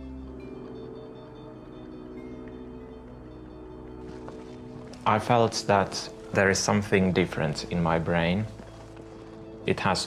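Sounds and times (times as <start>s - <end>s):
soft ambient music: 0.0s - 10.0s.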